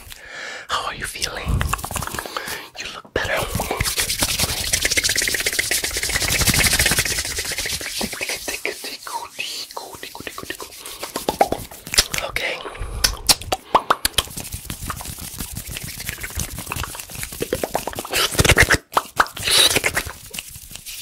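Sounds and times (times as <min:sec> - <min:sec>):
mouth clicks and pops: 0:01.2 - 0:08.5, 0:10.2 - 0:20.4
hands rubbing and fluttering: 0:01.3 - 0:02.6, 0:03.2 - 0:12.3, 0:13.2 - 0:21.0.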